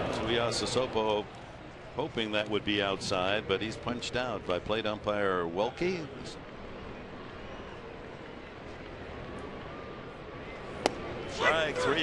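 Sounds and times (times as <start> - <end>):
crowd murmur: 6.0 - 12.0
ball popping into catcher's mitt: 10.8 - 11.1.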